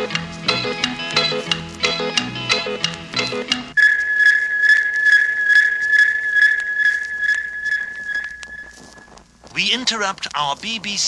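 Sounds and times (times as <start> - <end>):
high-pitched radio signal tone: 3.8 - 9.2
light ticking pulse: 3.8 - 9.2.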